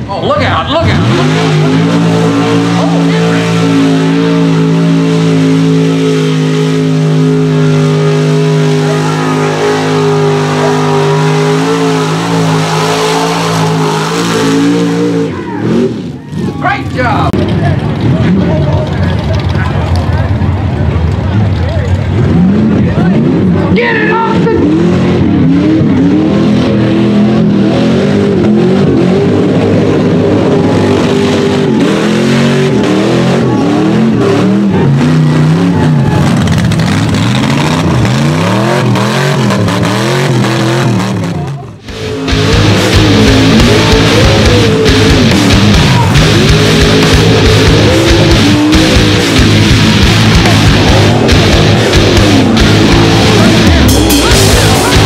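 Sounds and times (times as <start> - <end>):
truck engines revving: 0.0 - 55.0
tyres churning through mud: 0.0 - 55.0.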